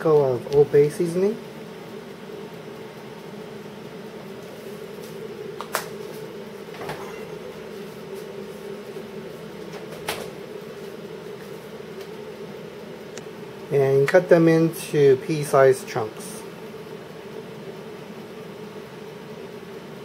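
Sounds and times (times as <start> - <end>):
air fryer fan hum: 0.0 - 20.0.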